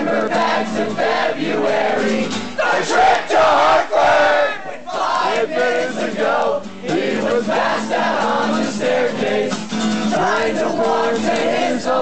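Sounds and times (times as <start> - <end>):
crowd singing and shouting: 0.0 - 12.0.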